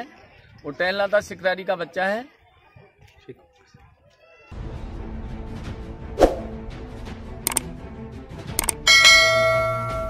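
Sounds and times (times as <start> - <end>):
background music: 4.5 - 10.0
quick clicks: 8.6 - 8.8
bell chime: 8.8 - 10.0.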